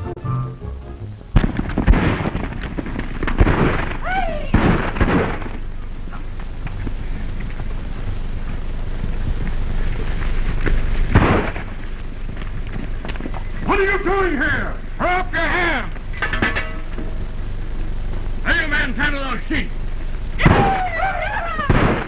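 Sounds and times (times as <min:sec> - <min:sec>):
film soundtrack hiss: 0:00.0 - 0:22.0
gunshots: 0:01.4 - 0:05.6, 0:11.1 - 0:11.8, 0:20.4 - 0:20.9, 0:21.7 - 0:22.0.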